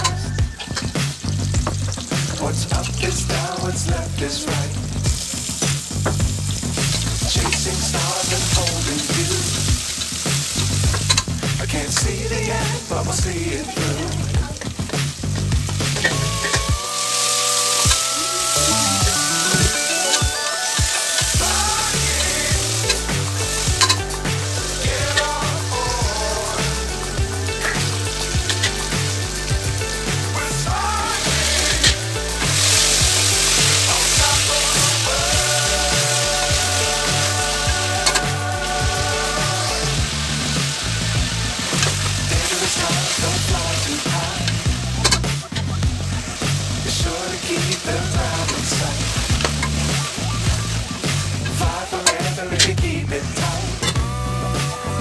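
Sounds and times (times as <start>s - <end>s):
background music with steady beat: 0.0s - 55.0s
vegetables sizzling in hot oil: 0.0s - 55.0s.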